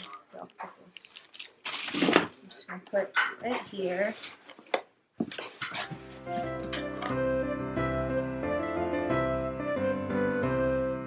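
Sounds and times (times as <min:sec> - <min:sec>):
plastic packaging rustling: 0:00.0 - 0:02.4
woman speaking: 0:02.4 - 0:04.3.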